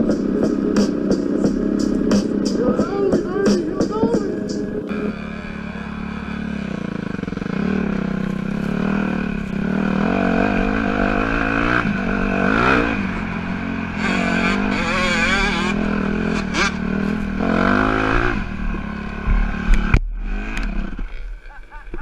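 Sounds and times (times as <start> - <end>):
dirt bike engine revving: 0.0 - 21.6.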